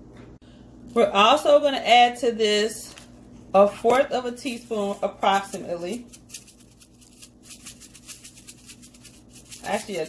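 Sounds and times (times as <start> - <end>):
shaker-like rattle: 3.9 - 10.0.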